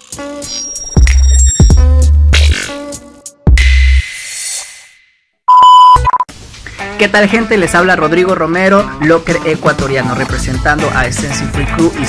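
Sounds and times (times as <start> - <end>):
loud electronic beep: 5.5 - 6.3
short beeps: 5.5 - 6.3.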